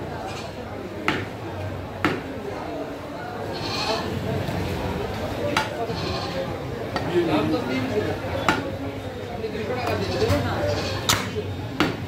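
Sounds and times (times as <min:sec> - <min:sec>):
voices: 0:00.0 - 0:12.0
cleaver chopping meat on wood: 0:01.0 - 0:01.3, 0:02.0 - 0:02.3, 0:08.5 - 0:08.7, 0:11.8 - 0:12.0.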